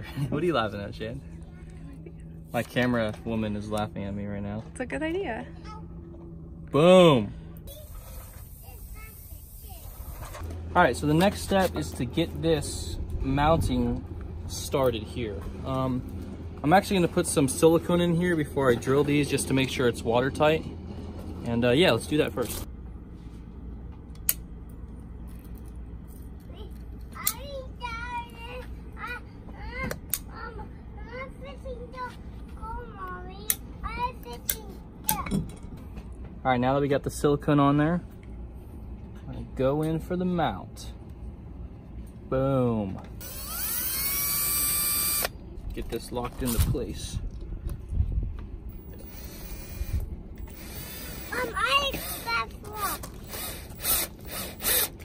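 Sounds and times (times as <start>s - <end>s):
cordless drill motor whining: 43.2s - 45.4s, 48.7s - 55.0s.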